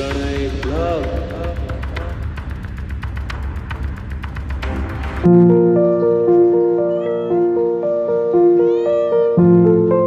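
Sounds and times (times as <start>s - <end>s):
keyboard melody: 4.6s - 10.0s
cat meowing: 6.6s - 9.9s.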